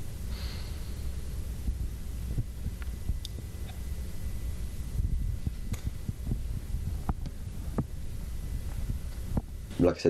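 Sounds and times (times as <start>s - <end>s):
low room rumble: 0.0s - 10.0s
breath through nose: 0.3s - 1.1s.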